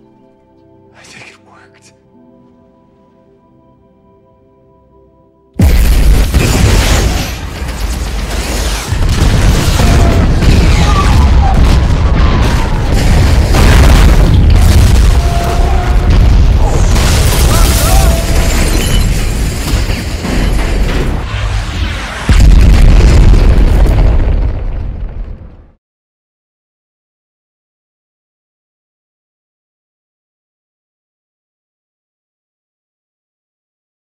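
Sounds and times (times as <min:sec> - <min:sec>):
crashing debris: 0:05.6 - 0:25.6
heavy explosions: 0:05.6 - 0:25.8
deep rumbling booms: 0:08.9 - 0:18.5, 0:20.2 - 0:25.8.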